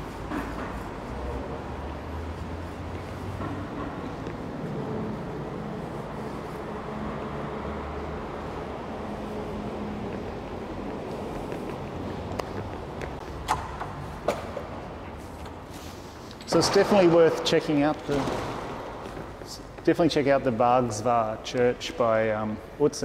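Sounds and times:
distant street traffic: 0:00.0 - 0:23.0.

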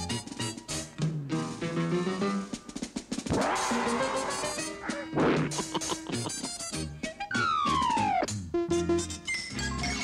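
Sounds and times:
cartoon music: 0:03.3 - 0:06.8.

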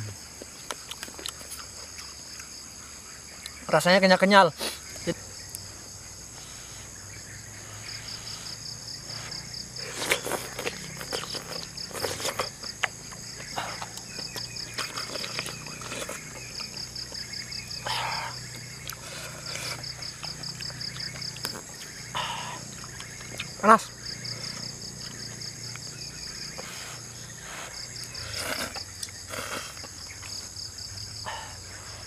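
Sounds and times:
insects chirping: 0:00.0 - 0:32.0
person slurping and chewing noodles: 0:09.3 - 0:17.2, 0:26.6 - 0:29.9.

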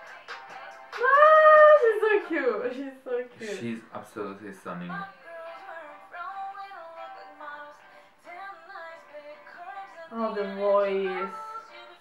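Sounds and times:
woman singing pop melody: 0:00.0 - 0:03.8, 0:04.7 - 0:12.0
light backing music: 0:00.0 - 0:12.0.

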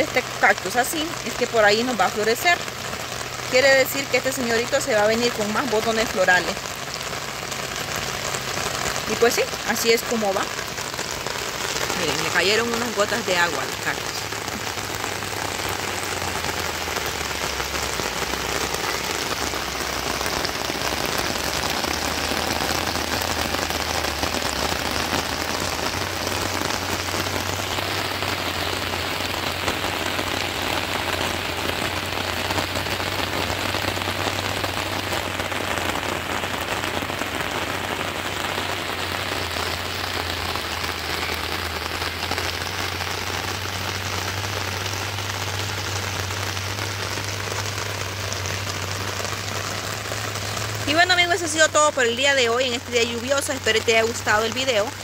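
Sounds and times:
rain falling on plants: 0:00.0 - 0:55.0.

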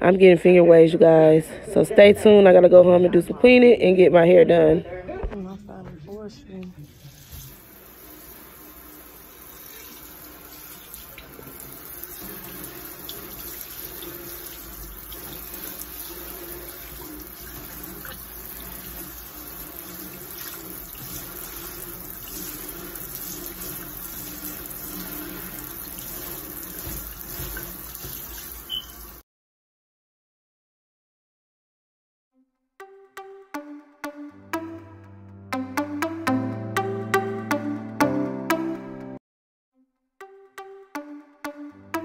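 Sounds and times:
water running into steel sink: 0:06.8 - 0:29.2.

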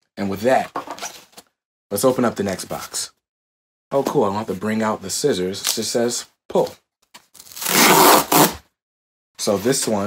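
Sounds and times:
cardboard tearing: 0:07.4 - 0:08.6.

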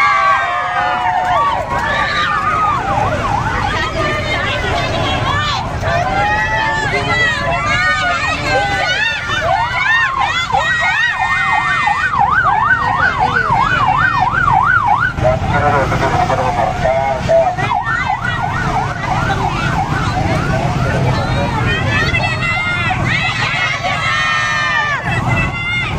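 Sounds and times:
motorcycle engines rumbling: 0:00.0 - 0:25.9
police siren yelping: 0:00.0 - 0:25.9.

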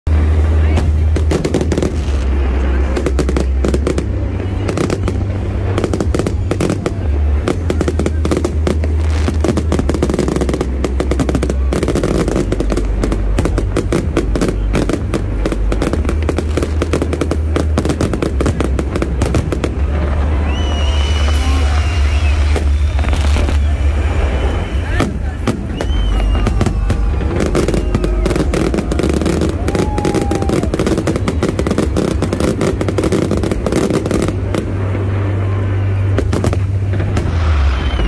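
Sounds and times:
low rumble: 0:00.0 - 0:38.0
fireworks bangs and crackles: 0:00.1 - 0:38.0.

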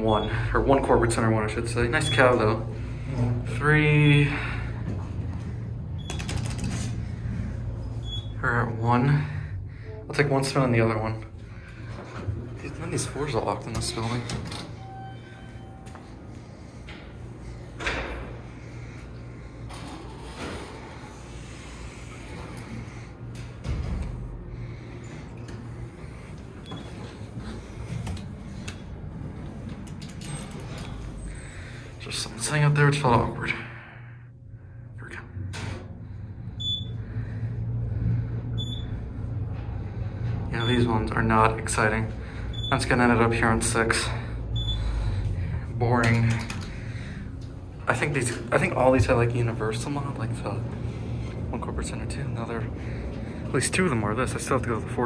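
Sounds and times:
elevator hum: 0:00.0 - 0:55.0
rapid mechanical clicks: 0:06.0 - 0:06.9.

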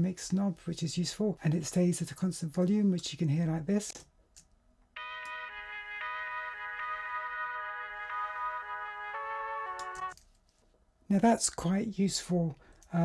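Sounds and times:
electronic keyboard chords: 0:05.0 - 0:10.2.

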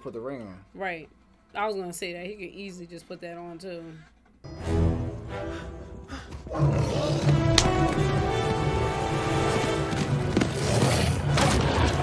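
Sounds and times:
orchestral music: 0:04.5 - 0:10.6.

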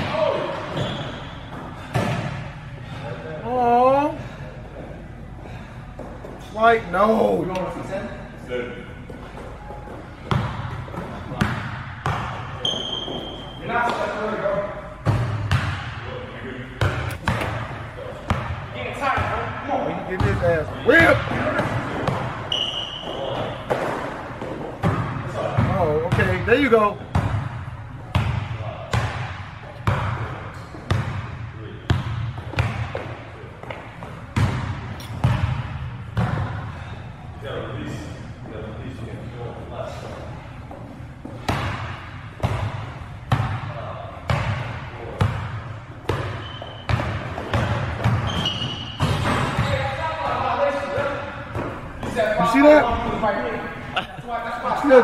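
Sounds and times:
sneaker squeaks on floor: 0:00.6 - 0:01.6, 0:12.6 - 0:13.6, 0:22.1 - 0:24.1, 0:46.1 - 0:49.7.

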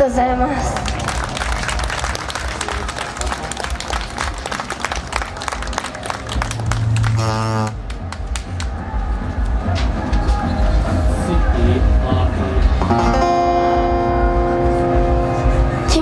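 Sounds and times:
audience clapping: 0:00.5 - 0:08.9.

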